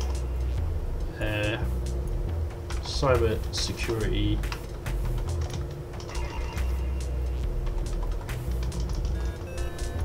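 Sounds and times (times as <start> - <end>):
steady low rumble: 0.0 - 9.4
computer keyboard keys clicking: 5.2 - 6.2, 7.6 - 9.9.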